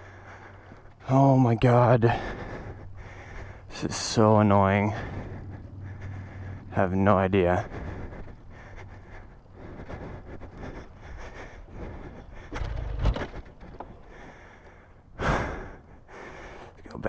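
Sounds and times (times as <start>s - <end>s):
wind: 0.0s - 17.0s.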